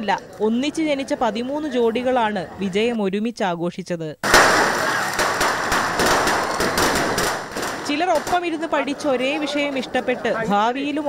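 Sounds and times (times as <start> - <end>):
fireworks hissing: 4.2 - 8.0
fireworks crackling pops: 4.2 - 8.6.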